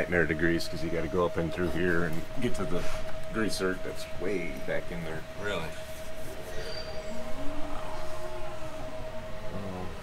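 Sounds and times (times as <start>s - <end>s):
steady single-pitched hum: 0.0s - 10.0s.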